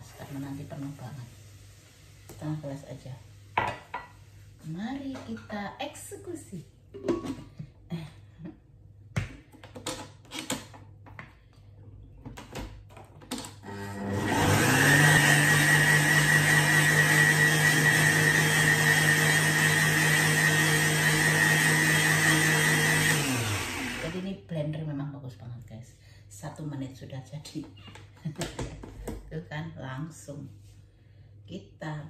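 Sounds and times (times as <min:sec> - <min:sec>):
blender motor whining: 0:13.6 - 0:24.3.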